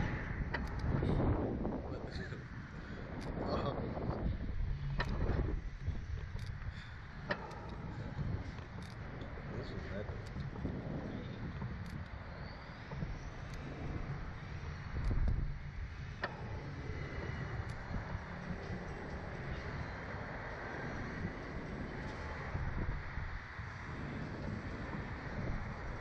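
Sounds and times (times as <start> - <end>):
wind rumbling on microphone: 0.0 - 26.0
small clicks: 0.5 - 1.3, 4.8 - 26.0.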